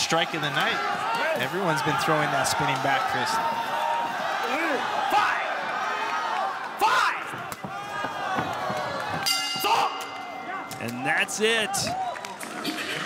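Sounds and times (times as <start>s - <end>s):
crowd shouting: 0.0s - 12.5s
ringing bell signal: 9.3s - 10.7s.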